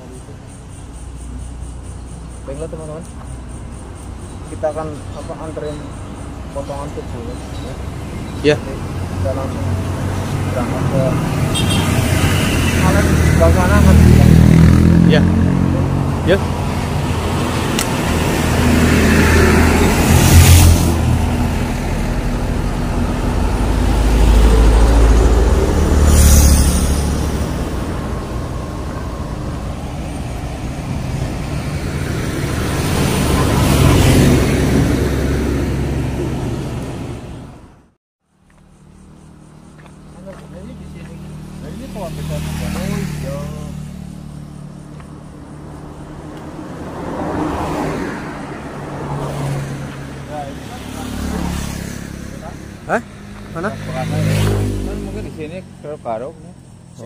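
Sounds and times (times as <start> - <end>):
vehicles passing: 0.0 - 57.0.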